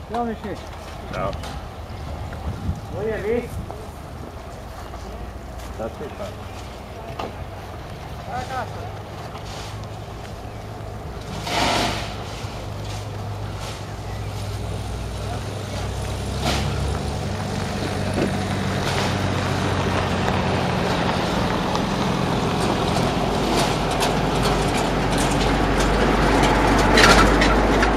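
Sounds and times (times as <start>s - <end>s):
diesel train engine drone: 0.0s - 27.9s
train wheels clicking on rail joints: 15.9s - 27.9s.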